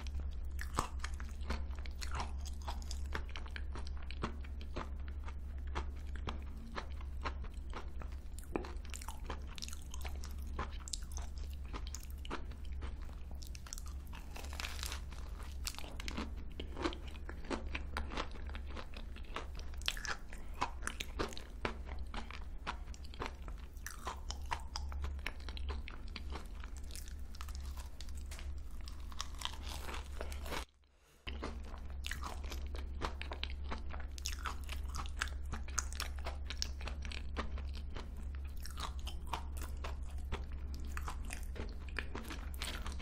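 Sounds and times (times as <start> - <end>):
crunchy chewing: 0.0 - 43.0
low steady hum: 0.0 - 43.0.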